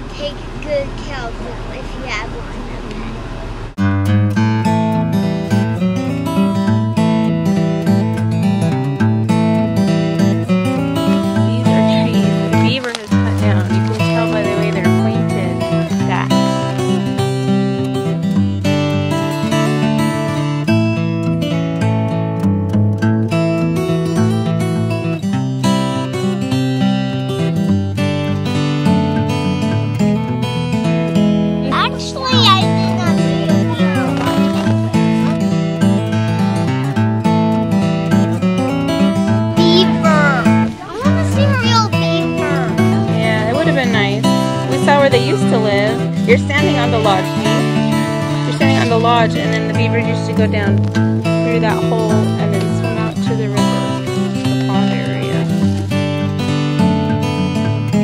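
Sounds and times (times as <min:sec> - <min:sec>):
strummed acoustic guitar: 0:00.0 - 0:58.0.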